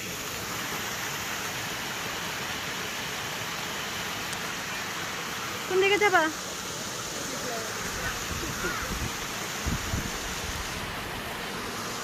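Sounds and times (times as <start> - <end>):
waterfall rushing over rocks: 0.0 - 12.0.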